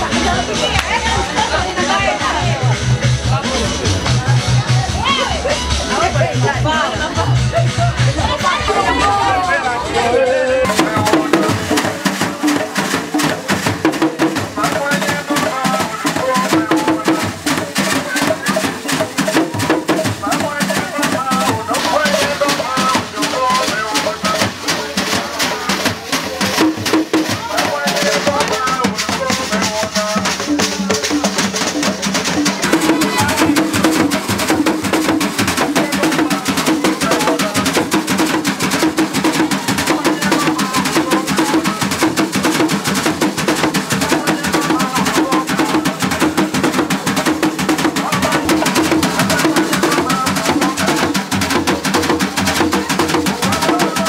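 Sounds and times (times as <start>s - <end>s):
drum and percussion rhythm: 0.0s - 54.0s
voices singing over drums: 0.0s - 54.0s.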